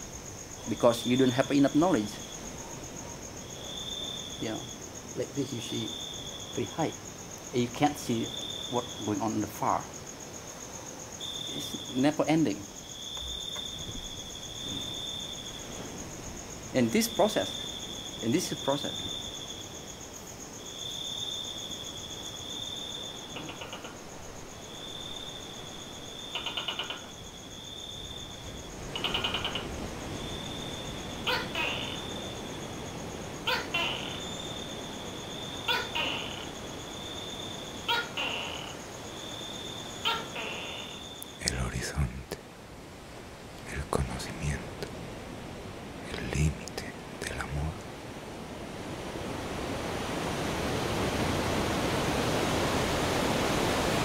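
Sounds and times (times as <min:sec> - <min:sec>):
insect trilling: 0:00.0 - 0:42.5, 0:43.6 - 0:45.0, 0:46.0 - 0:47.8.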